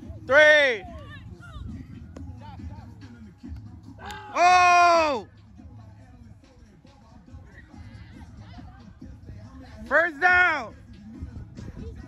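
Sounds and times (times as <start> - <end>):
person shouting loudly: 4.0 - 5.2.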